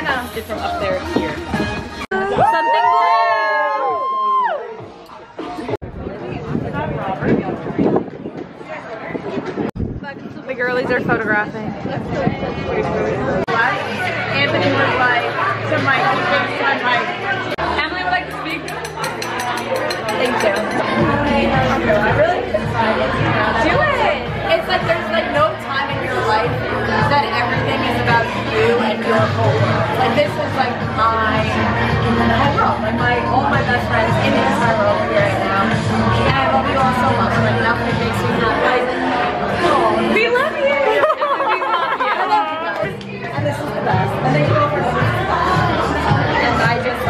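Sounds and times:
background music: 0.0 - 5.8, 13.5 - 47.0
women talking and chattering: 0.0 - 47.0.

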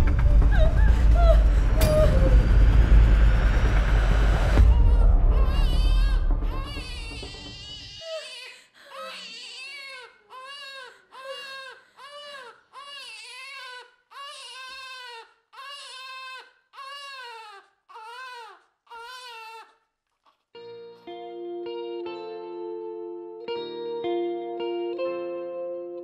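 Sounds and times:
low sound: 0.0 - 7.9
baby crying: 4.6 - 19.8.

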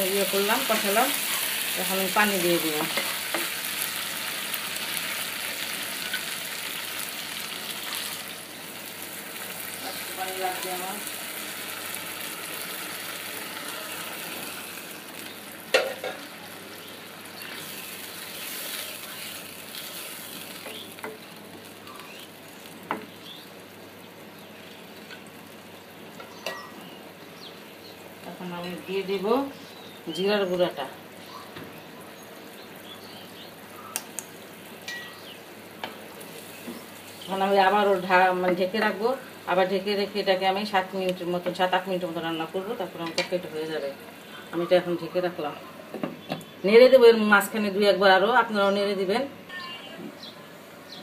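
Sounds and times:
curry sizzling in a wok: 0.0 - 31.2, 34.4 - 45.4.

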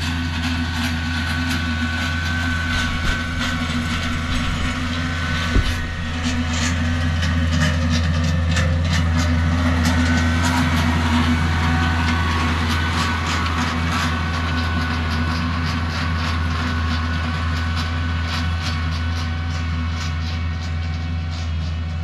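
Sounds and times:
tractor engine running under load: 0.0 - 22.0.

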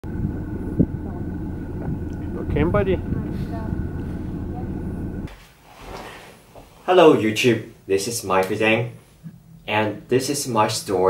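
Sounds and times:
low engine rumble: 0.0 - 5.3.

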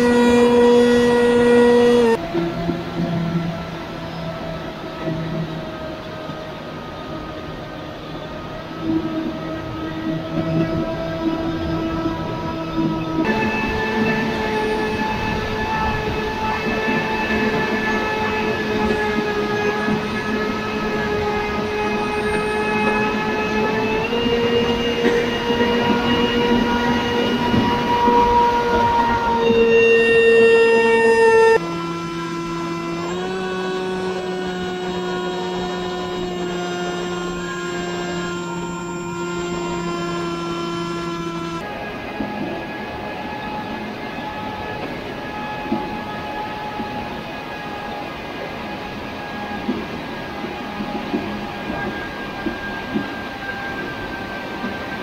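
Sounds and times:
rush of wind: 0.0 - 29.6
electric motor and propeller whining: 0.0 - 55.0.

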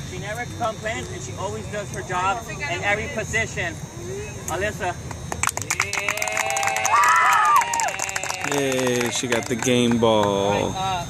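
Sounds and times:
people clapping: 5.3 - 10.7
people whooping: 5.5 - 9.8.

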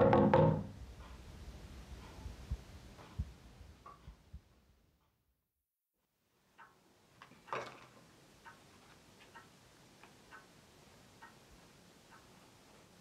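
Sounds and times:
rustle or knock: 0.0 - 1.2, 7.2 - 8.1
clock ticking: 0.0 - 5.2, 6.5 - 13.0
low room hum: 0.0 - 5.3.

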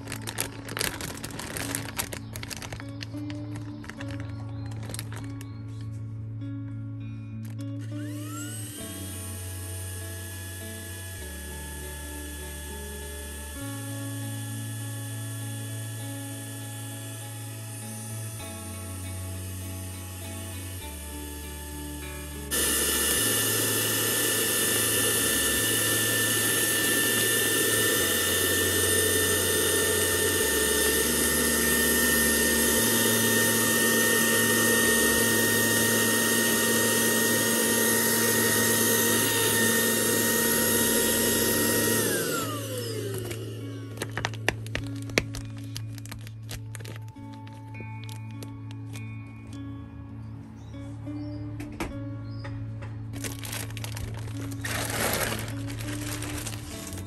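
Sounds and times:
handheld vacuum cleaner whining: 0.0 - 5.4, 7.4 - 49.6, 53.2 - 57.0
background music: 0.0 - 40.2, 40.9 - 57.0.

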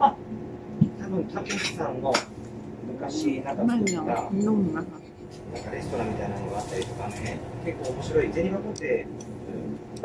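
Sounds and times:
tableware clinking: 1.4 - 2.3, 3.8 - 6.1.

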